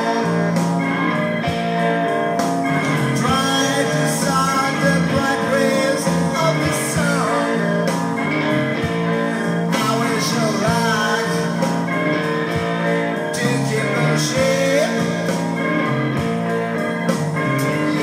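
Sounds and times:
person singing: 0.0 - 2.0, 2.7 - 16.5, 17.4 - 18.0
guitar: 0.0 - 18.0
rock record through speakers: 0.0 - 18.0.

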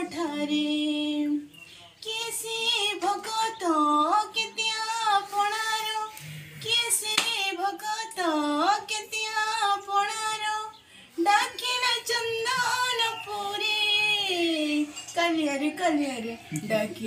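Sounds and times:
woman singing unaccompanied: 0.0 - 17.0.

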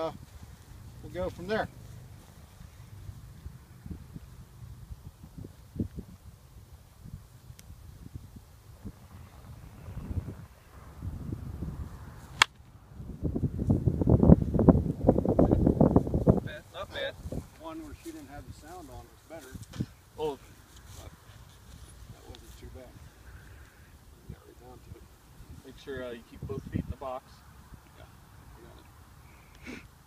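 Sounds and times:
wind buffeting microphone: 0.0 - 20.1, 20.9 - 27.9
wooden bat hitting baseball: 12.4 - 12.6.

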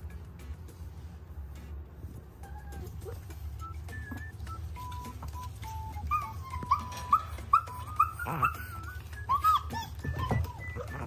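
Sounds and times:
puppy whimpering: 2.3 - 11.0.

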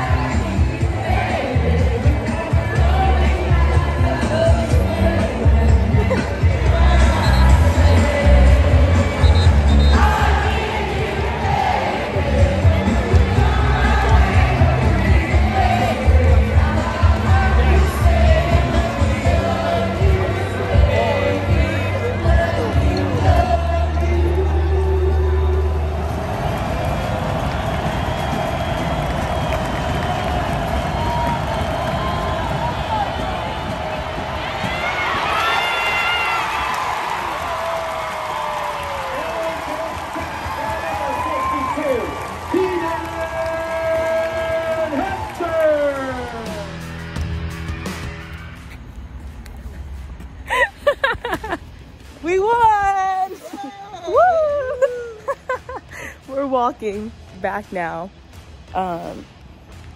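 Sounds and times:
music playing: 0.0 - 59.9
stadium crowd noise: 0.0 - 59.9
excited voices: 30.1 - 46.7, 52.2 - 56.5
laughter: 50.5 - 51.7, 54.5 - 56.2.

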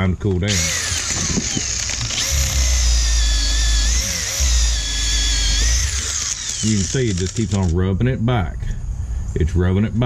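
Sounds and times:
drill motor whine: 0.5 - 7.7.

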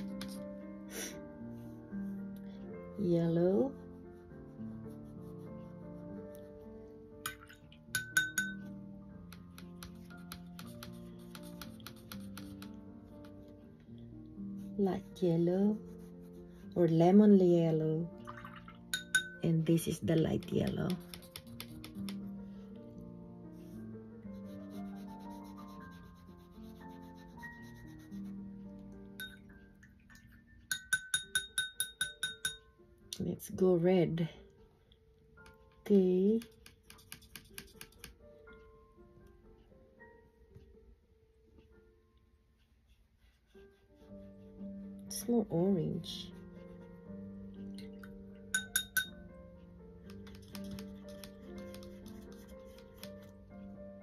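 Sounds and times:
soft background music: 0.0 - 54.0
paintbrush rinsed in water: 7.2 - 8.7, 14.9 - 21.4
brush scrubbing on paper: 14.6 - 16.9, 23.6 - 28.4, 42.9 - 45.0, 50.5 - 53.2
brush handle clinking on glass: 29.2 - 29.5, 30.7 - 32.6, 48.5 - 49.1.

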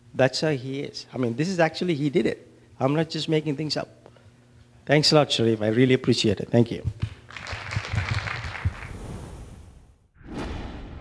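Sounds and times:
audience applause: 7.0 - 9.0.

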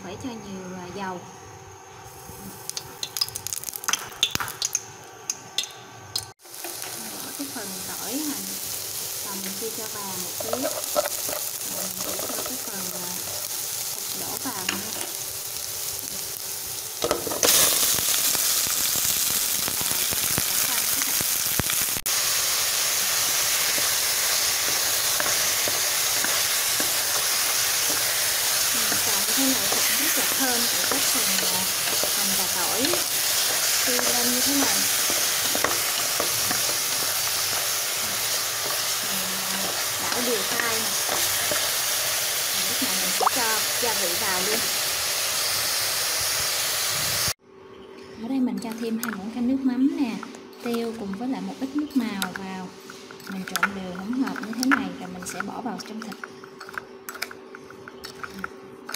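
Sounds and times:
meat sizzling in hot oil: 2.1 - 47.4.

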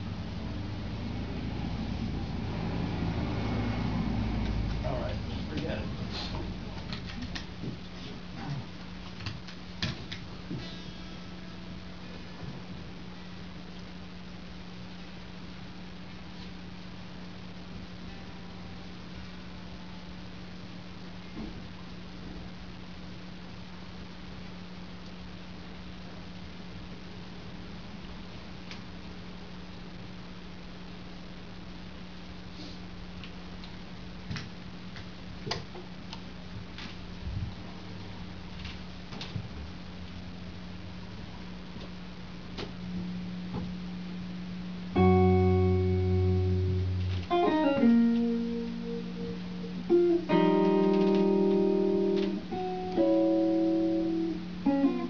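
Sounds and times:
amplifier hum: 0.0 - 55.0
guitar rig clicks and taps: 46.9 - 48.4, 49.9 - 53.1.

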